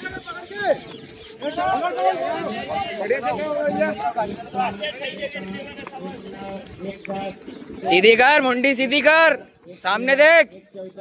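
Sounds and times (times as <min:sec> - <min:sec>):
man shouting coaching: 0:01.5 - 0:10.6.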